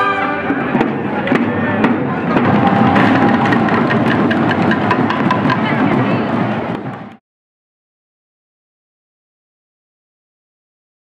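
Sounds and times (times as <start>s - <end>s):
crowd voices: 0.0s - 7.2s
drums beaten with sticks: 0.4s - 7.2s.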